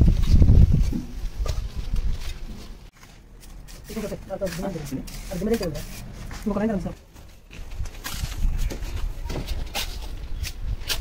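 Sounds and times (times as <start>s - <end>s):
trowel scraping mortar: 3.4s - 6.5s, 9.7s - 11.0s.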